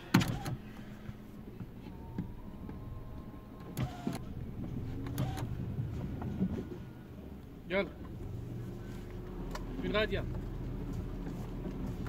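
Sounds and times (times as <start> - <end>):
car engine hum from inside: 0.0 - 12.0.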